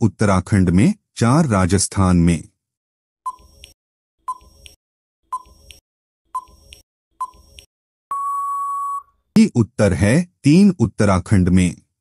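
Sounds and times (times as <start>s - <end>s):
long steady beep: 8.1s - 9.2s
short beep: 8.1s - 9.2s.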